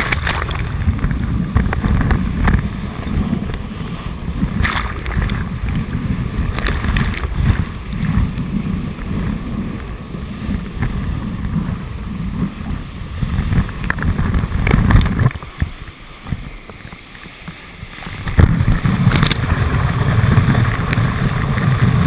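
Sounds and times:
rushing whitewater: 0:00.0 - 0:22.0
water splashes: 0:00.0 - 0:22.0
wind buffeting microphone: 0:00.0 - 0:22.0.

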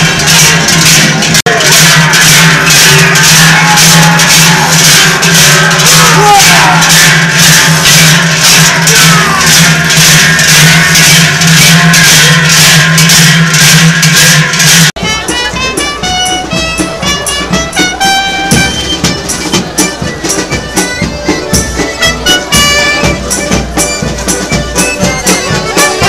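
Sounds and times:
cowbells clanking rhythmically: 0:00.0 - 0:26.0.

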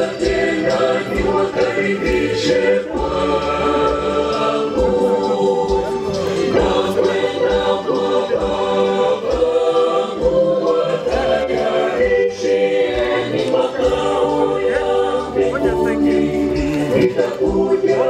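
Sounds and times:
choir singing unaccompanied: 0:00.0 - 0:18.0.

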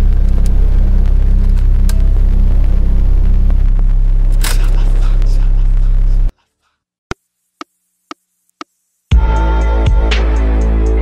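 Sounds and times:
distorted bass drone: 0:00.0 - 0:06.3
noisy burst: 0:00.0 - 0:06.3.

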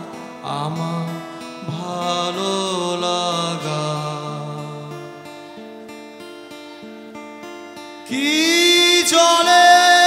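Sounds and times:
man singing a long note: 0:00.0 - 0:05.0, 0:08.1 - 0:10.0
strummed acoustic guitar: 0:00.0 - 0:10.0.

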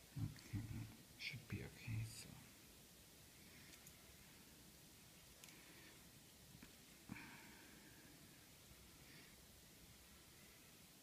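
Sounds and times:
man muttering: 0:00.2 - 0:01.0.

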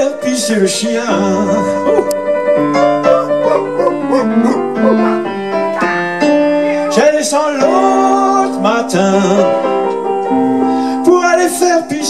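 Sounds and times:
jazz boogie band: 0:00.0 - 0:12.0
piano: 0:00.0 - 0:12.0.

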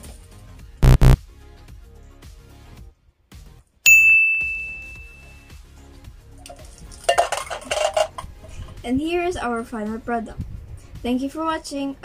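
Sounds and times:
metallic ding: 0:03.9 - 0:05.4
rattling clatter: 0:07.0 - 0:08.2.

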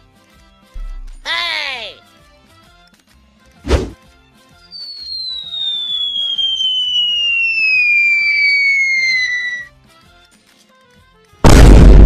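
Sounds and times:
falling whistle sound effect: 0:04.7 - 0:09.7.

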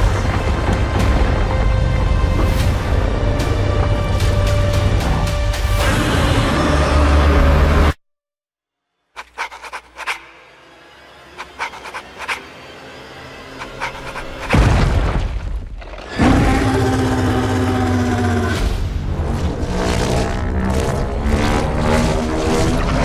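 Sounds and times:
orchestral trailer score: 0:00.0 - 0:08.0, 0:09.2 - 0:23.0
monster roaring: 0:16.1 - 0:18.7.

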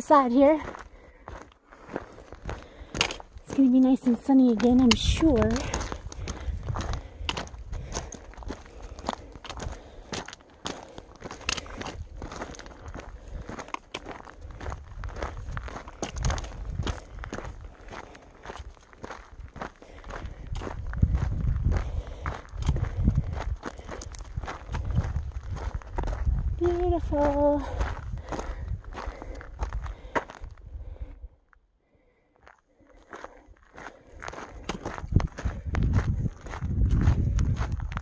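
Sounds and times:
footsteps crunching on gravel: 0:00.1 - 0:31.0, 0:32.4 - 0:38.0.

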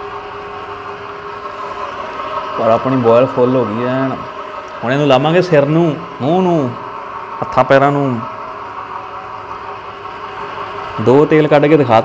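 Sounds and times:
oil press motor humming: 0:00.0 - 0:12.0.

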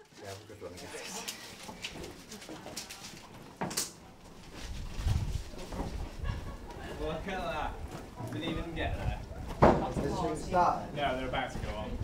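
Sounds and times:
group walking down corridor: 0:00.0 - 0:12.0.

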